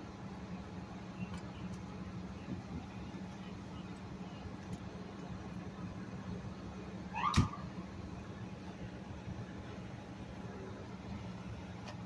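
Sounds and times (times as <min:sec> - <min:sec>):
idling vehicle engines hum: 0:00.0 - 0:12.0.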